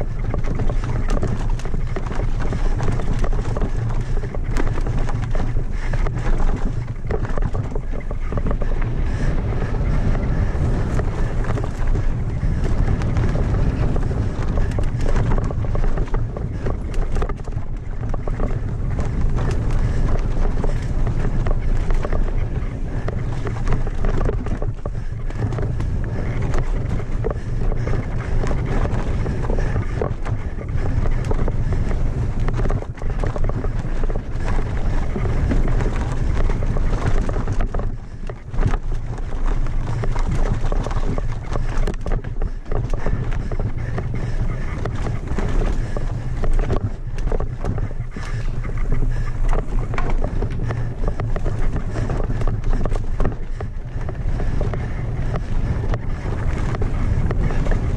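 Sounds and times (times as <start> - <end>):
bike rattling on rocks: 0.0 - 57.9
wind rumble on microphone: 0.0 - 57.9.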